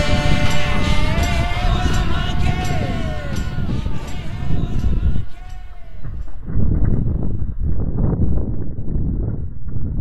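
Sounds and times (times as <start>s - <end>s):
bike wheels and frame knocking: 0.0s - 7.9s
wind rumble on microphone: 0.0s - 10.0s.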